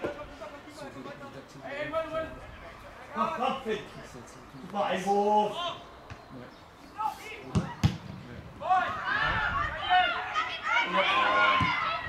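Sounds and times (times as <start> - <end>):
football being kicked: 7.5 - 8.2.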